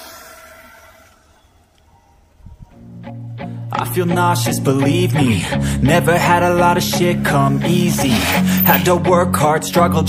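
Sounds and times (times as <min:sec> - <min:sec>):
electric bicycle motor and tyres: 0:00.0 - 0:01.8.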